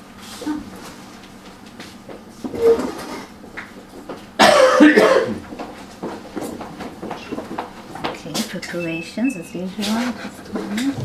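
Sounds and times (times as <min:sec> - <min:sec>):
person coughing: 0:04.4 - 0:05.4.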